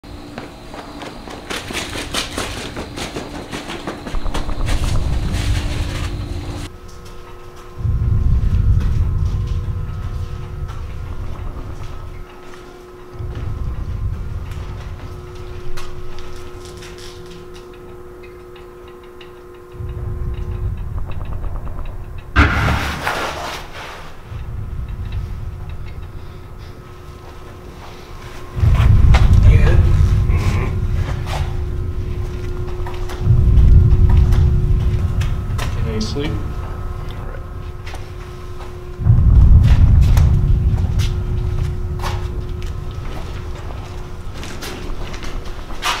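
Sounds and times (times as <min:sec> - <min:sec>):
steady low hum: 0:00.0 - 0:46.0
crackling noise with clicks: 0:00.2 - 0:46.0
deep rumbling: 0:00.9 - 0:46.0.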